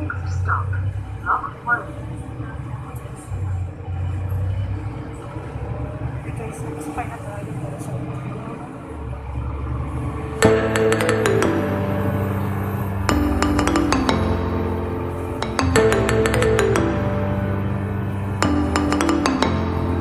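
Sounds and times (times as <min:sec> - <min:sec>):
faint voices: 0:00.0 - 0:04.2
vehicle rumble: 0:00.0 - 0:20.0
music with chiming bell-like notes: 0:10.4 - 0:20.0.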